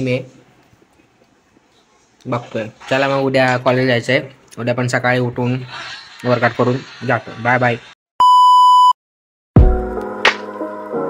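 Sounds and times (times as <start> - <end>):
test-tone beep: 8.2 - 9.0
music with deep hit: 9.6 - 10.6.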